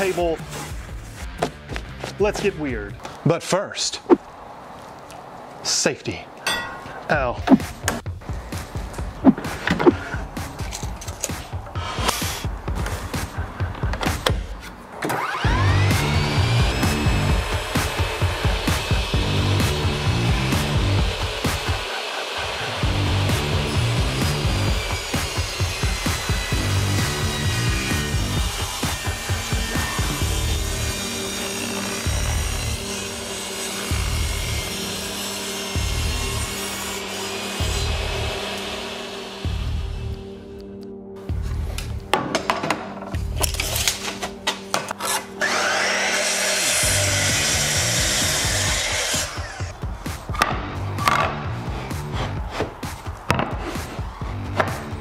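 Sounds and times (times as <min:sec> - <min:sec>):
table saw cutting wood: 0:15.0 - 0:40.4, 0:44.1 - 0:49.7.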